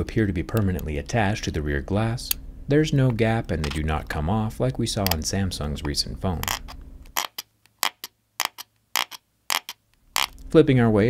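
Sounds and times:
metal tool clicking on lens: 5.0 - 5.2, 6.4 - 10.4.

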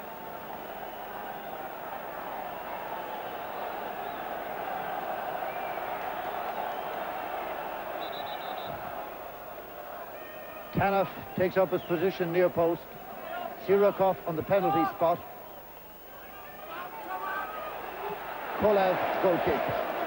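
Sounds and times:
stadium crowd noise: 0.0 - 20.0.

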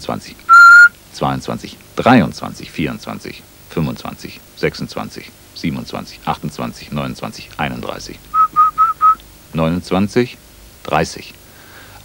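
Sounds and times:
short whistle blasts: 0.5 - 0.9, 8.4 - 9.2.

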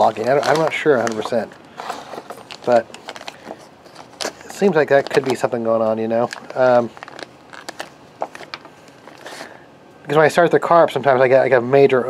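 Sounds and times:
plastic bags crinkling: 0.0 - 9.6.

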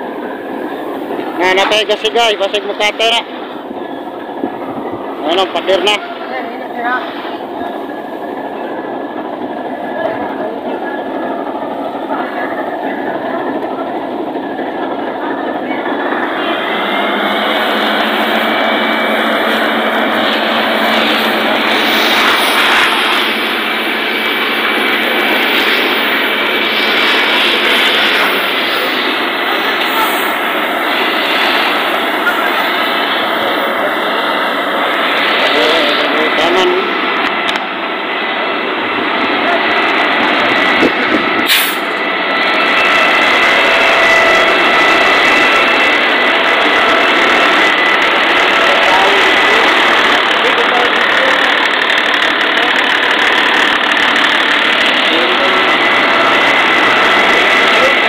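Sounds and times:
fire truck water pump drone: 0.0 - 58.0.

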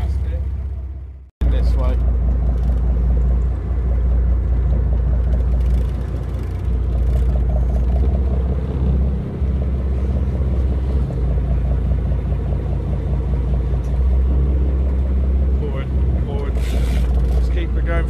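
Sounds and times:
boat engine droning: 0.0 - 18.0.

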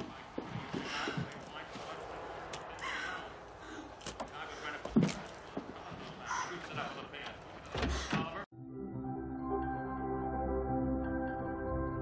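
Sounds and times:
soft music with held chords: 8.6 - 12.0.

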